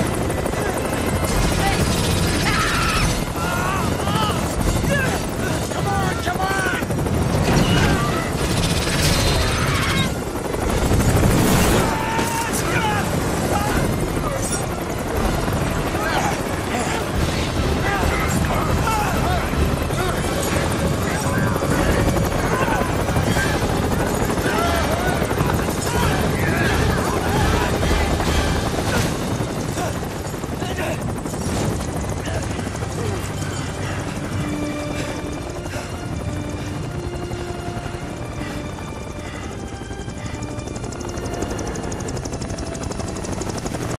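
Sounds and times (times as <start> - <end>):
helicopter hovering overhead: 0.0 - 44.0
men shouting: 0.4 - 8.4, 9.4 - 10.2, 11.7 - 31.2.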